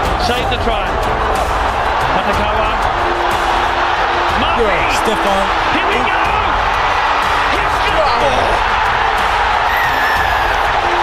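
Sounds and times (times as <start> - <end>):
music: 0.0 - 11.0
stadium crowd cheering: 0.0 - 11.0.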